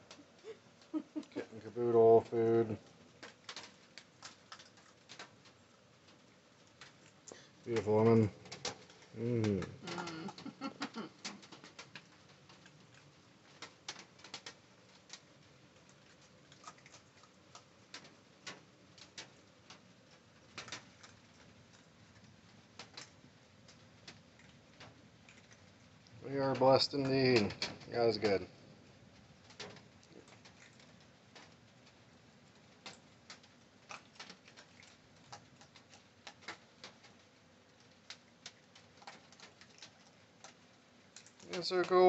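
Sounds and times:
raccoon chewing dry food: 0.0 - 42.0.

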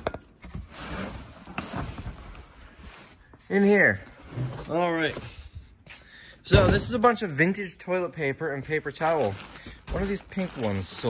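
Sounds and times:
cardboard boxes scraping on shelf: 0.4 - 3.2, 3.9 - 5.3.

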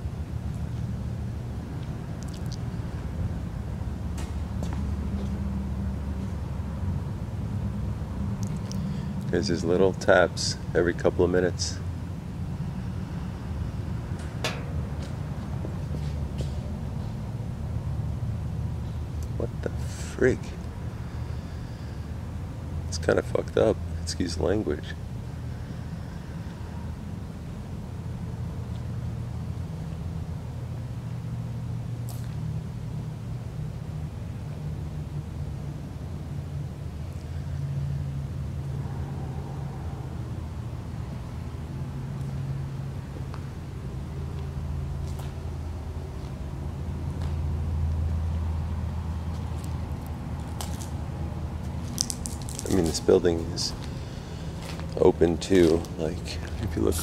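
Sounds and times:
distant road traffic rumble: 0.0 - 57.0.

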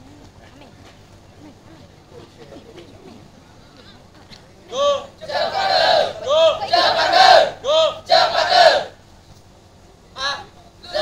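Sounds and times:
young voices shouting a cheer: 4.7 - 9.0, 10.2 - 11.0.

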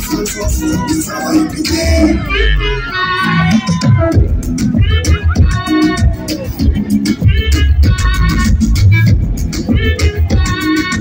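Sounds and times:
amplified vocals: 0.0 - 11.0
loud live music: 0.0 - 11.0.

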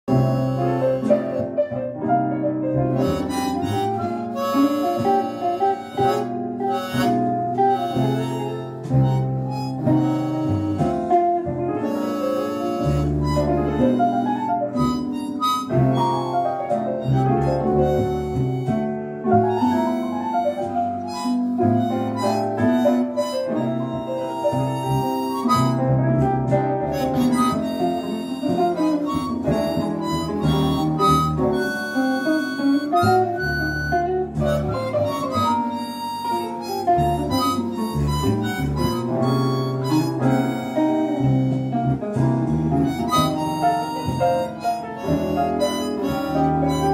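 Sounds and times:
harmonica playing jazz melody: 0.0 - 46.9.

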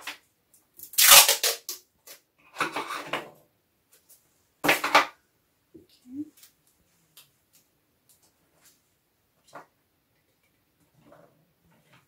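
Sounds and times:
sticky tape pulled off roll: 0.8 - 2.2.

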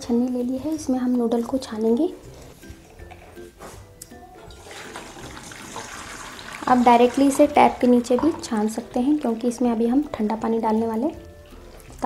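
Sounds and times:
water pouring into a strainer: 4.5 - 9.6.

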